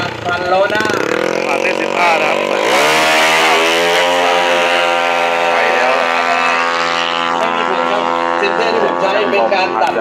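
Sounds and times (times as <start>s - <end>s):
motorcycle engine screaming revs: 0.0s - 10.0s.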